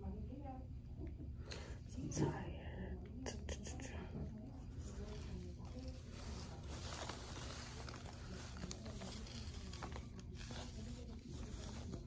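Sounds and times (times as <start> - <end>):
soft whispering: 1.5 - 12.0.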